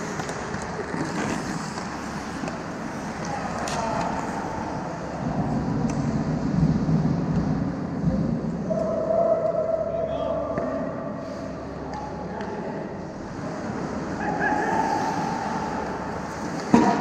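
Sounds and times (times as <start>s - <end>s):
hockey stick clacking puck: 0.0s - 4.3s
skate blades scraping ice: 0.0s - 5.1s.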